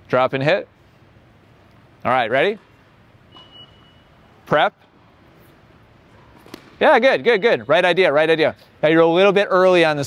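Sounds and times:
indoor hall hum: 0.0 - 10.0.

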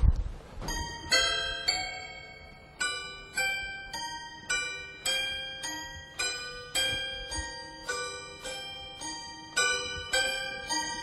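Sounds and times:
toy piano notes pinging: 0.6 - 11.0.

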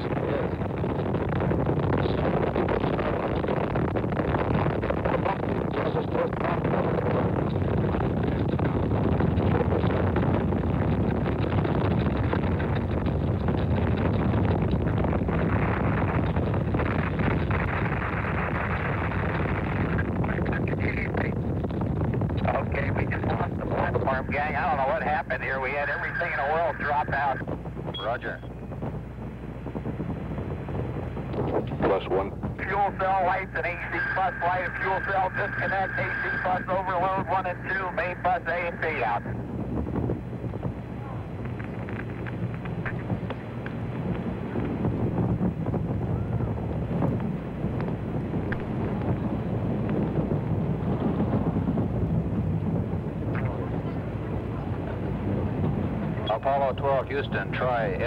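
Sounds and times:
rocket roar: 0.0 - 58.0
wind buffeting microphone: 0.0 - 58.0
faint radio voices: 17.0 - 21.5, 22.4 - 28.6, 31.5 - 39.4, 56.0 - 58.0.

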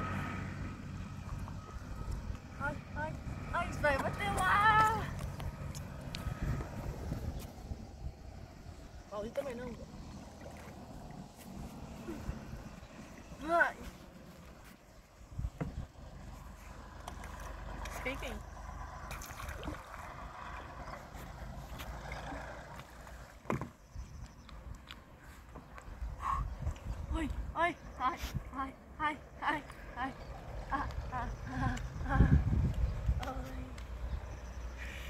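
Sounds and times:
water sloshing and splashing: 3.7 - 23.9.

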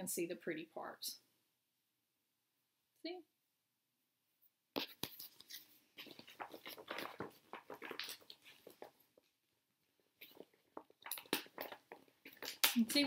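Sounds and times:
plastic envelope crinkling: 4.8 - 9.2.

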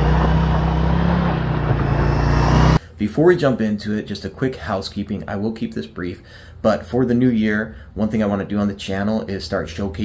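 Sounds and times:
motorcycle engine running: 0.0 - 2.8.

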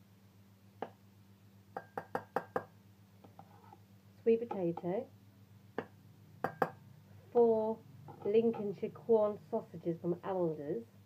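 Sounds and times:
hard objects tapping plastic cup: 1.8 - 2.7, 5.8 - 6.8.

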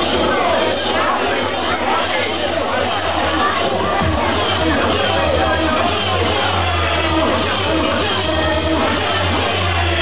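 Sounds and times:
hardcore dance music: 2.3 - 10.0
sustained low bass note: 3.6 - 10.0.

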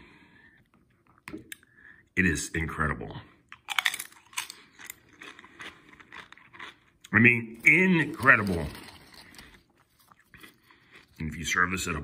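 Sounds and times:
person chewing crunchy chip: 3.5 - 11.8.

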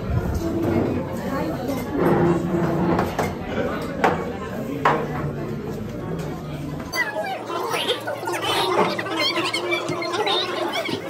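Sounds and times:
diners talking: 0.4 - 11.0.

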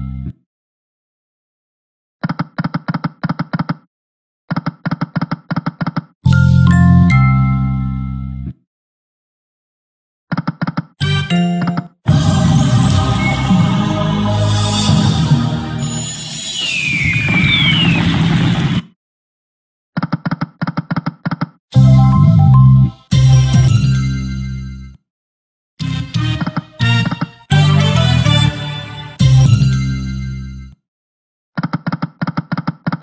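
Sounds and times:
electronic slot win sound: 11.1 - 14.4.

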